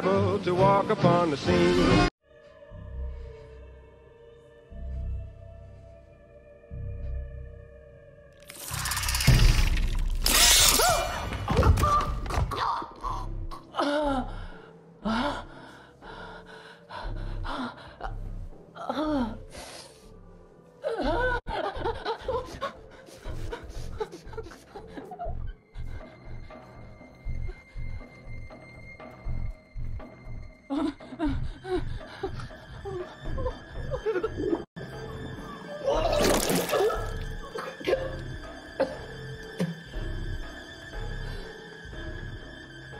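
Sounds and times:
low pulsing score music: 0:02.2 - 0:08.4, 0:36.8 - 0:42.9.

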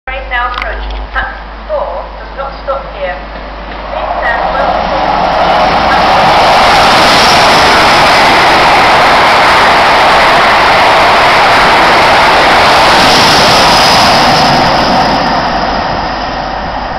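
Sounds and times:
diesel train passing at speed: 0:01.0 - 0:16.9.

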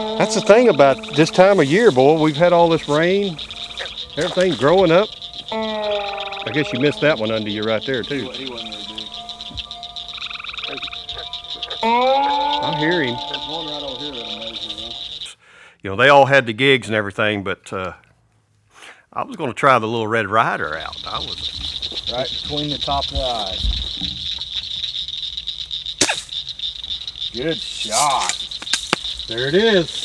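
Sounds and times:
insects and frogs trilling: 0:00.0 - 0:15.4, 0:20.2 - 0:30.0
air gun shot: 0:26.0 - 0:26.3.

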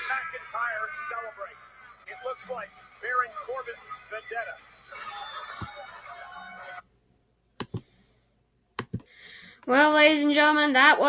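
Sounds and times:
music: 0:00.0 - 0:06.8
arena noise: 0:00.0 - 0:06.9.

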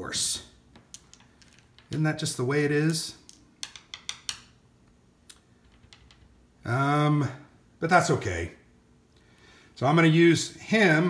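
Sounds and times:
game pieces clicking on table: 0:00.8 - 0:02.0, 0:02.9 - 0:04.6, 0:05.3 - 0:06.4.

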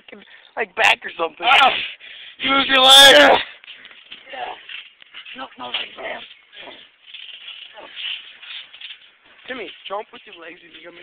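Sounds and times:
bodies and clothing rustling: 0:03.0 - 0:11.0.

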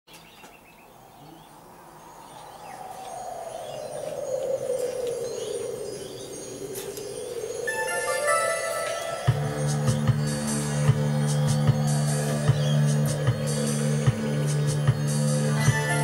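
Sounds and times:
wind-like whooshing swell: 0:00.9 - 0:16.0
sustained ringing notes: 0:05.8 - 0:16.0
chime tinkles: 0:07.6 - 0:10.9.

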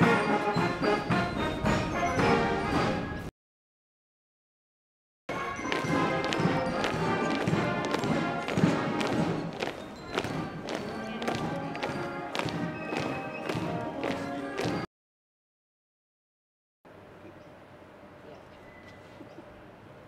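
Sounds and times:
brass melody: 0:00.0 - 0:03.3, 0:05.3 - 0:14.9
steady drum beat: 0:05.8 - 0:09.6, 0:10.2 - 0:14.8.

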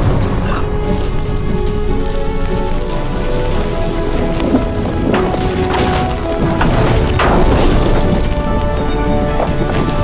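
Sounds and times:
crackling debris: 0:00.0 - 0:10.0
deep continuous rumble: 0:00.0 - 0:10.0
held orchestral notes: 0:00.0 - 0:10.0.

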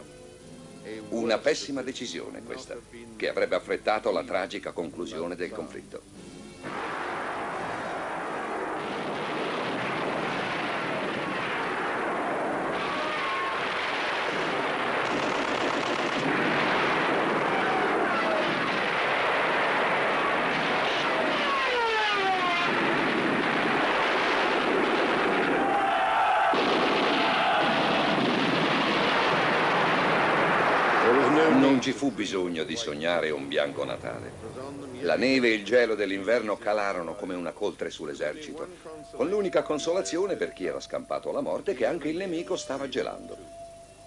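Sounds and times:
gunfire: 0:06.6 - 0:31.9
shell explosions: 0:06.6 - 0:34.4
falling whistles: 0:10.2 - 0:14.6, 0:20.1 - 0:22.8, 0:25.4 - 0:32.3.

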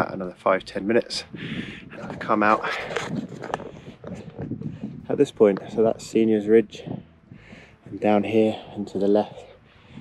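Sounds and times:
faint outdoor background noise: 0:00.0 - 0:10.0
man breathing: 0:01.3 - 0:02.2, 0:02.9 - 0:05.1, 0:06.8 - 0:10.0.

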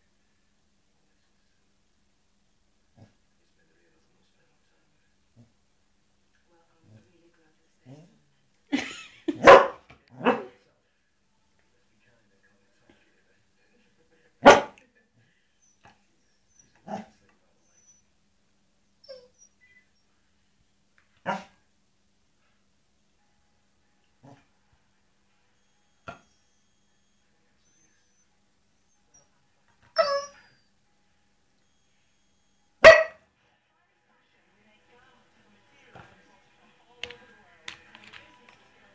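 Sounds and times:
dog barking: 0:09.3 - 0:10.6, 0:14.4 - 0:14.8, 0:16.8 - 0:17.1, 0:21.2 - 0:21.6, 0:32.8 - 0:33.2.

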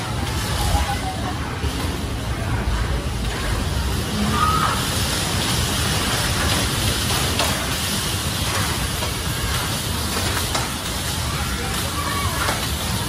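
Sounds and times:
bumper cars rumbling: 0:00.0 - 0:13.0.

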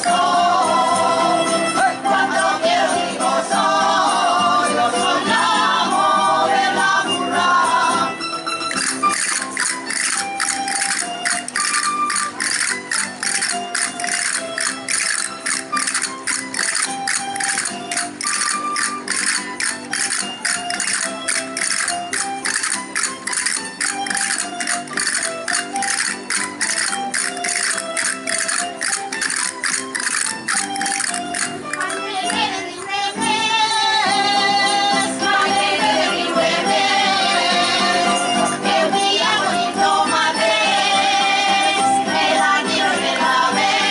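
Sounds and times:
sharp jingling percussion beat: 0:00.0 - 0:01.9, 0:08.2 - 0:33.0
folk dance music: 0:00.0 - 0:43.9.

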